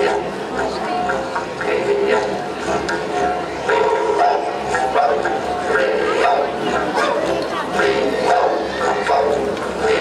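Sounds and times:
didgeridoos droning: 0.0 - 10.0.

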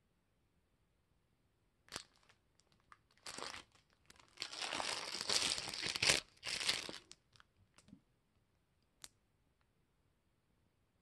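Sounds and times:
plastic packaging crinkling: 1.9 - 7.5.

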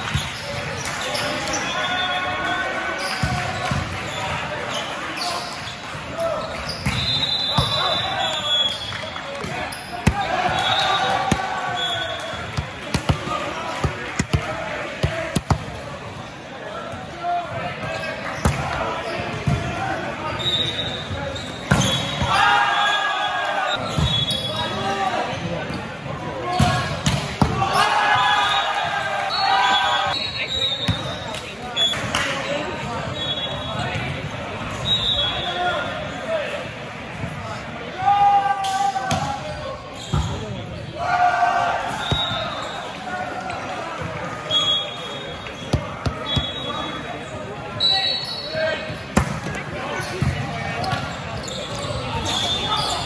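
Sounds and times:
voices of players and spectators: 0.0 - 53.0
volleyballs bouncing on gym floor: 9.3 - 15.8, 45.7 - 46.6
indistinct voices echoing: 9.3 - 17.7.

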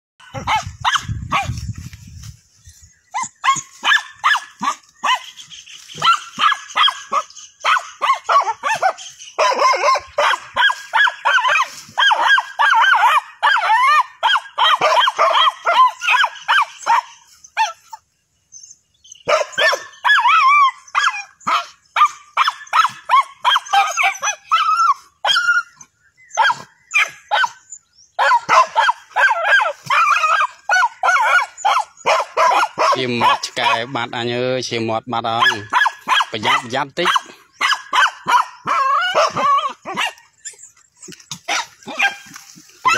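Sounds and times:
dogs barking and yipping: 0.2 - 2.0, 3.0 - 18.1, 19.1 - 34.4, 35.1 - 42.9.

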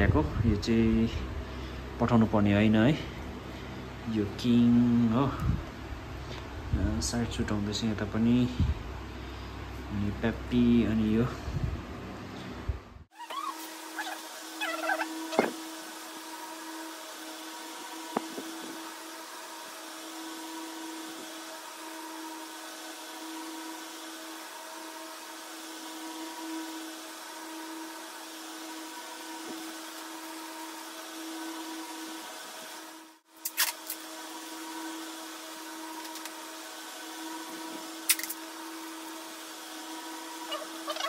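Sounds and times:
steady motor hum: 0.0 - 41.0.

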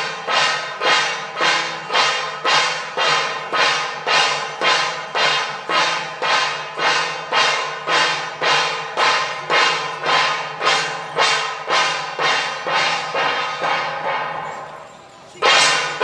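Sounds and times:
hand cymbals clashing: 0.0 - 16.0.

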